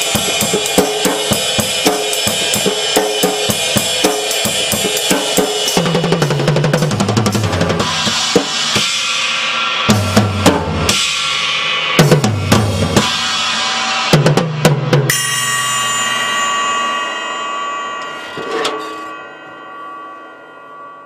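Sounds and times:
cymbal crash ringing: 0:00.0 - 0:14.3, 0:15.1 - 0:21.0
drum fills: 0:00.0 - 0:15.7
light cymbal hit: 0:15.1 - 0:20.9.

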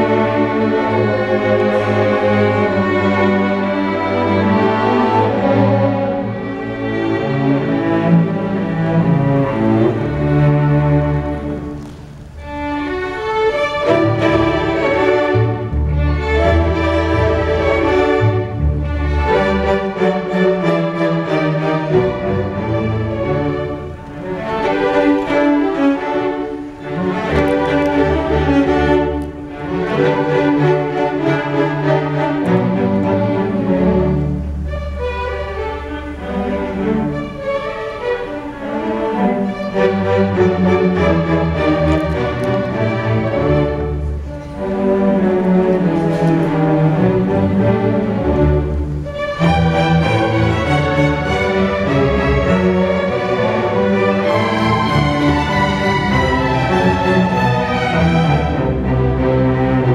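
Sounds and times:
orchestra strings playing held notes: 0:00.0 - 0:59.9.

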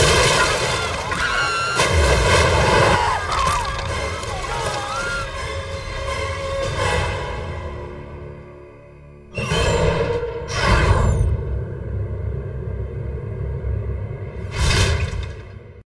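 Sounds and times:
low rumbling music drone: 0:11.3 - 0:14.5.

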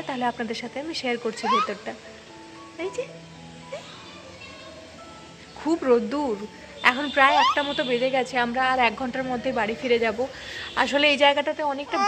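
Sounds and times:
faint background music: 0:00.0 - 0:12.0
baby squealing: 0:01.4 - 0:01.8, 0:07.3 - 0:07.6.

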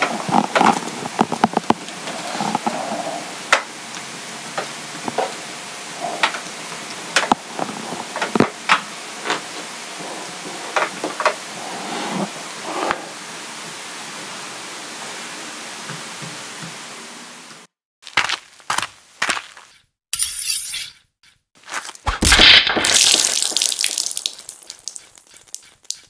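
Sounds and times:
steady hiss: 0:00.0 - 0:17.7
crashing shattering impact: 0:22.1 - 0:24.0.

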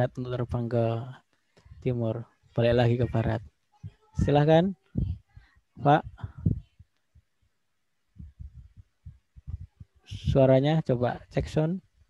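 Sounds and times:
muffled low thumps: 0:05.0 - 0:07.3, 0:08.1 - 0:10.5.

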